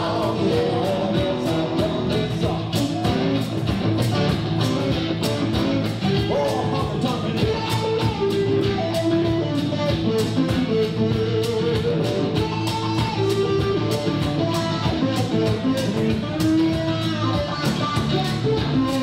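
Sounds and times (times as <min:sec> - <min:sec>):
electric guitar melody: 0:00.0 - 0:19.0
live country band: 0:00.0 - 0:19.0.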